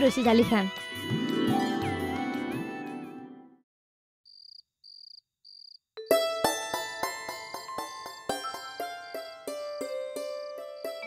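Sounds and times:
background music: 0:00.0 - 0:03.6, 0:06.0 - 0:11.0
plucked-string music: 0:01.0 - 0:03.4, 0:06.0 - 0:11.0
high cricket chirps: 0:04.3 - 0:05.8.

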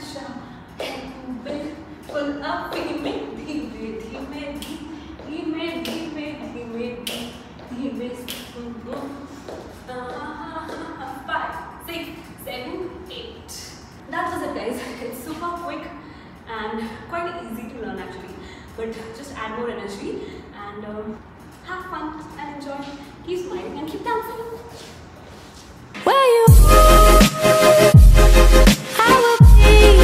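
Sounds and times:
woman singing sustained notes: 0:26.1 - 0:28.0.

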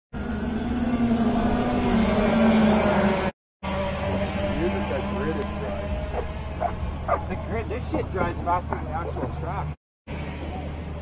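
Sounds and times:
racing kart engines droning: 0:00.2 - 0:11.0.

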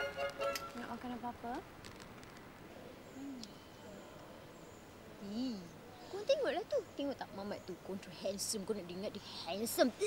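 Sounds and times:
person murmuring hmm: 0:03.2 - 0:03.6.

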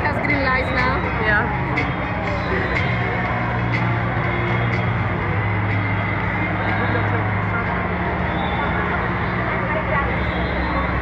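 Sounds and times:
indoor crowd chatter: 0:00.0 - 0:11.0.

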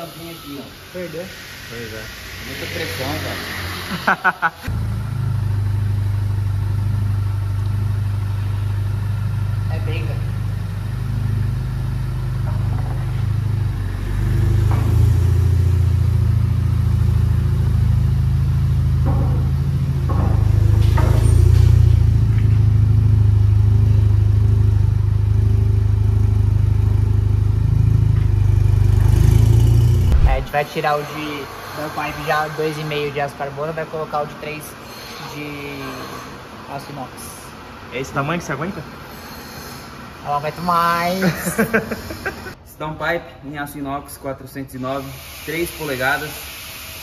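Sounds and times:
car engine exhaust drone: 0:00.0 - 0:32.3.

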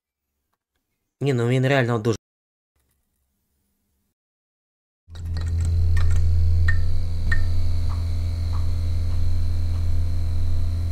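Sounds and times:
low electrical hum: 0:05.1 - 0:10.9
faint high whine: 0:05.3 - 0:10.9.

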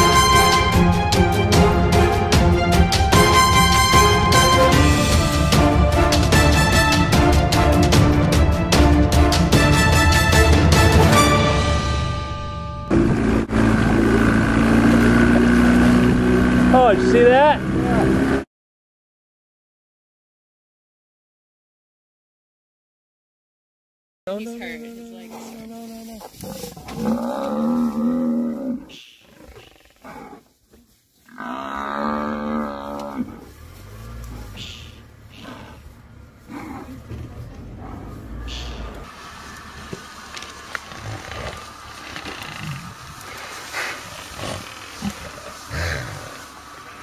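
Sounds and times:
music: 0:00.0 - 0:13.5
engine hum: 0:00.0 - 0:18.5, 0:31.8 - 0:47.0
buffalo bellowing: 0:25.3 - 0:30.5, 0:31.3 - 0:47.0.

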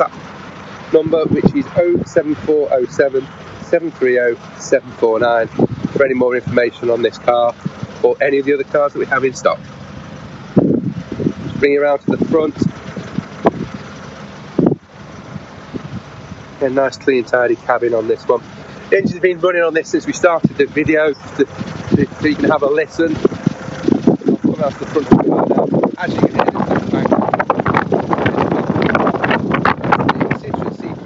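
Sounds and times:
diesel engine idling: 0:00.0 - 0:31.0
strong wind buffeting microphone: 0:00.0 - 0:31.0.

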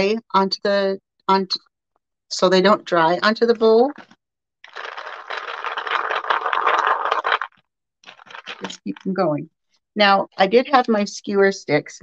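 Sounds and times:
beads rattling in paper bowl: 0:04.6 - 0:09.2.

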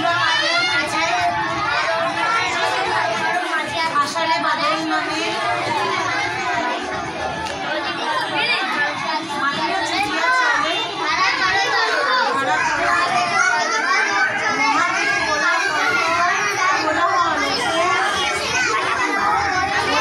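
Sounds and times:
young children chattering: 0:00.0 - 0:20.0.

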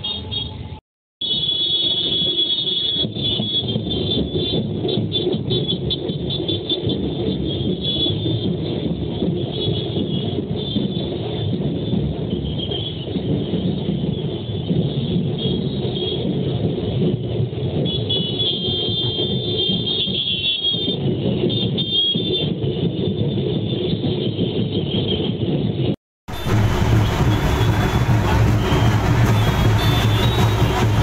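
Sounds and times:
traffic: 0:00.0 - 0:31.0
dense crowd: 0:26.3 - 0:31.0
high steady tones: 0:26.3 - 0:31.0
music: 0:26.3 - 0:31.0.

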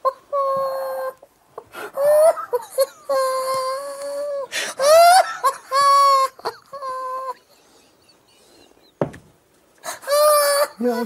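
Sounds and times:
man's stifled squealing laughter: 0:00.0 - 0:09.0, 0:09.8 - 0:11.0.

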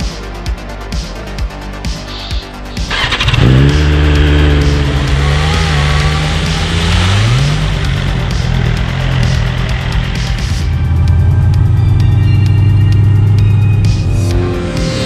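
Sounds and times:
motorcycle engine idling and revving: 0:00.0 - 0:15.0.

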